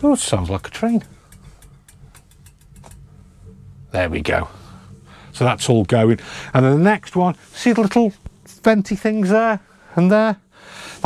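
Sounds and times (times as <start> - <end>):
gas fire rumbling: 0.0 - 9.2.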